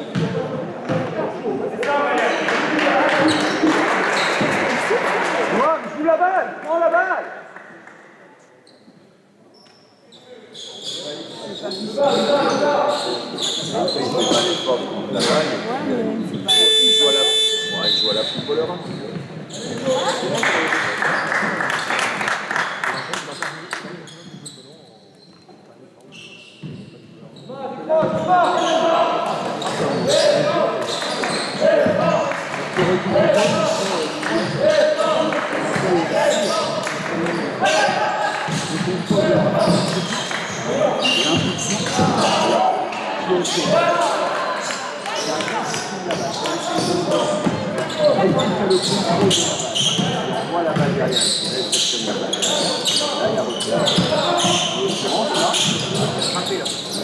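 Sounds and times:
basketball bouncing: 0.1s - 1.1s
buzzer: 16.5s - 18.2s.

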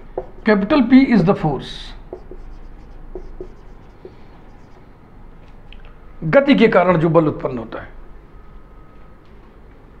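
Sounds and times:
marker writing on whiteboard: 0.0s - 4.9s.

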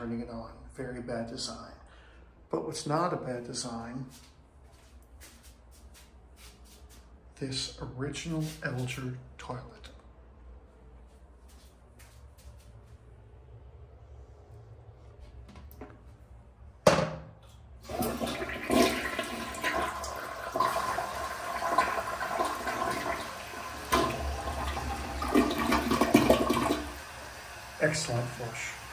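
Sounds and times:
toilet flushing water rushing: 17.8s - 28.9s.

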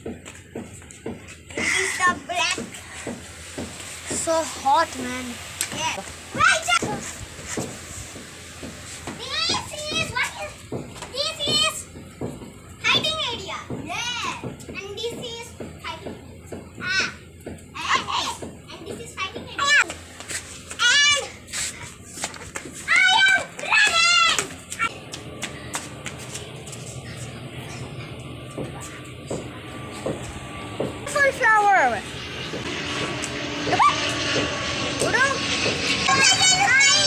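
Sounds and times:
turboprop plane droning overhead: 0.0s - 37.0s
children calling and squealing: 4.1s - 7.2s, 9.0s - 11.9s, 22.8s - 25.0s, 33.5s - 37.0s
children calling out: 33.6s - 34.3s.

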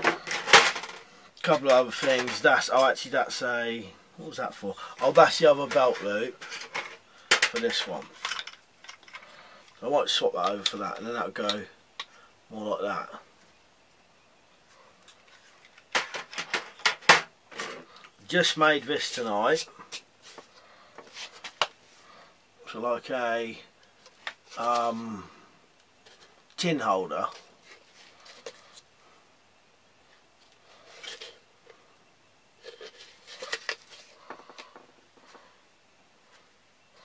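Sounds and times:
stiff plastic rubbing and scraping: 32.6s - 35.5s.

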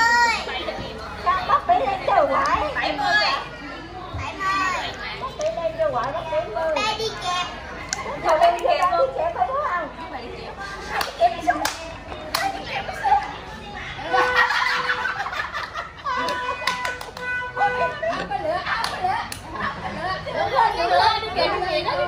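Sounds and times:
people talking and laughing: 0.0s - 22.0s.

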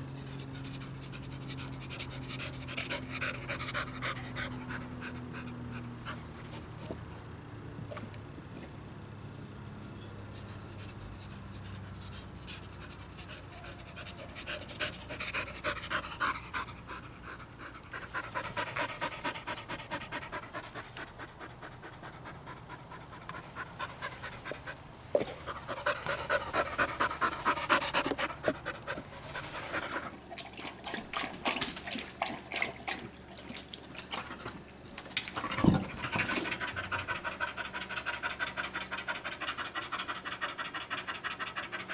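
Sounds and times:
dog panting fast: 0.1s - 6.4s, 10.3s - 30.2s, 35.4s - 41.9s.

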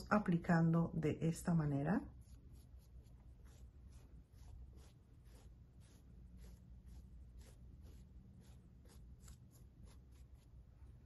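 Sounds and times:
low steady room hum: 0.0s - 11.0s
paintbrush dabbing and dragging: 2.1s - 11.0s.

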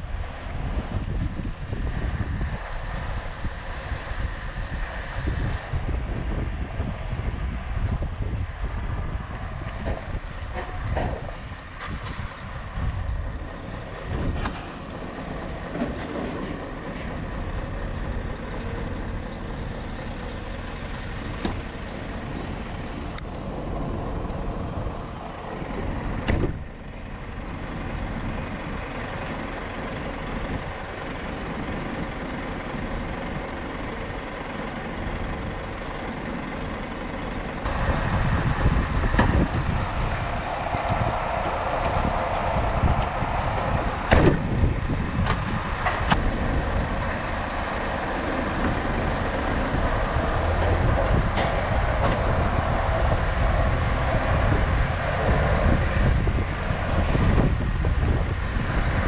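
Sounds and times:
truck engine running: 0.0s - 59.0s.

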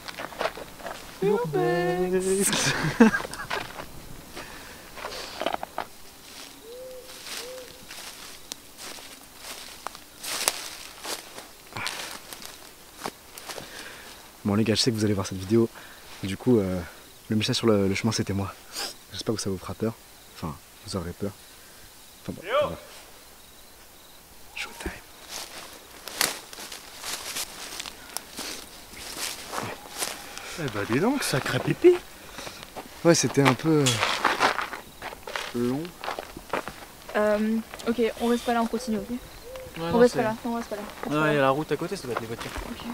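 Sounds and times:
footsteps crunching through dry leaves: 0.0s - 14.3s, 25.1s - 37.8s
faint hoot-like calls: 6.4s - 7.9s, 24.4s - 25.1s, 29.5s - 30.6s, 38.3s - 40.0s.

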